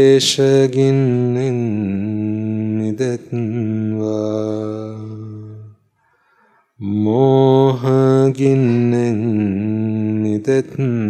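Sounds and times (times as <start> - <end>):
monk chanting: 0.0 - 5.8, 6.8 - 11.0.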